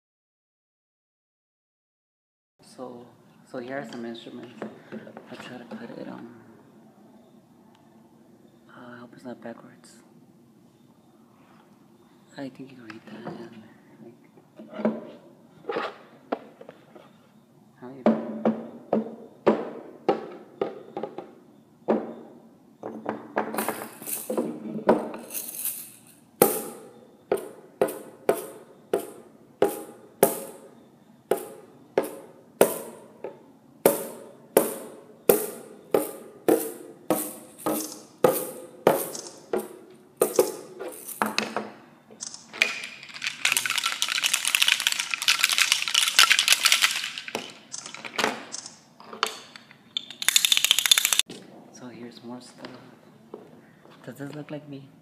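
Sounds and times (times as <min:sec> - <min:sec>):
shaker rattling hiss: 0:23.7 - 0:24.4, 0:25.2 - 0:26.8, 0:33.9 - 0:41.4, 0:42.2 - 0:48.0, 0:50.2 - 0:51.3
drum struck with beater: 0:33.8 - 0:40.6.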